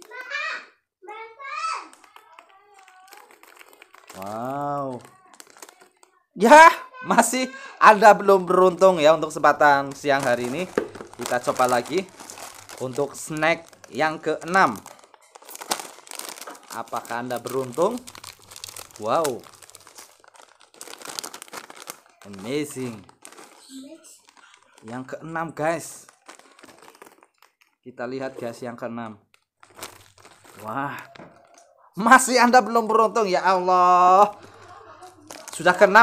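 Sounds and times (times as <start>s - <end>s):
plastic packet crinkling: 1.8s - 36.0s
snacks clicking into plastic bucket: 1.9s - 4.2s, 10.0s - 12.9s.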